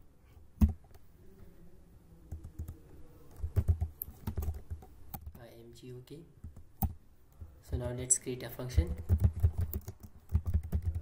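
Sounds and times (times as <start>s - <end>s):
typing on computer keyboard: 2.3s - 5.4s, 8.8s - 11.0s.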